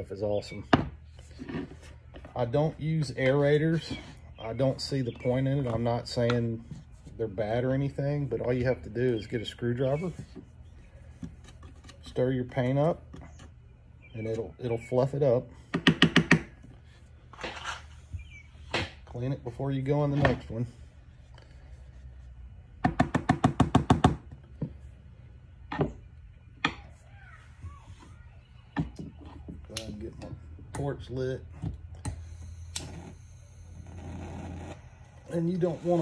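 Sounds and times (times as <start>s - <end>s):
scraping rustle: 17.3s - 18.1s
propane torch humming: 31.6s - 36.0s.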